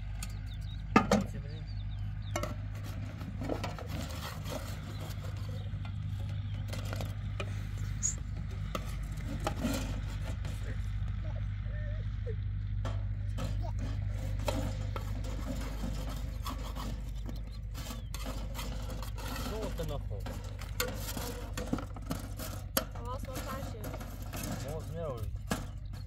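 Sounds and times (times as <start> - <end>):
steady low hum: 0.0 - 26.0
metal utensil scraping a griddle: 2.2 - 11.0, 13.0 - 26.0.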